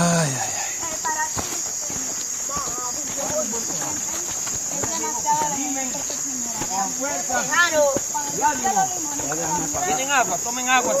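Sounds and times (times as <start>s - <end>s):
crickets chirping: 0.0s - 11.0s
footsteps on ground: 0.0s - 11.0s.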